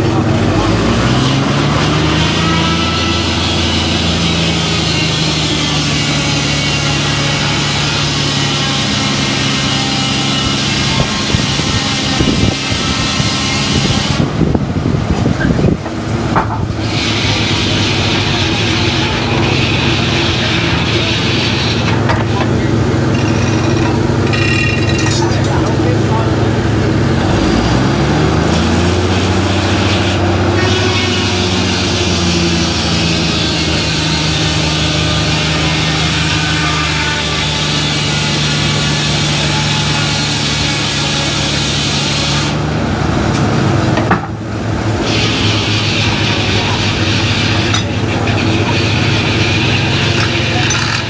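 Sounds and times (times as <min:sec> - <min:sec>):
saw cutting log: 0:00.0 - 0:14.4, 0:15.4 - 0:42.6, 0:45.0 - 0:51.0
sawmill drive drone: 0:00.0 - 0:51.0.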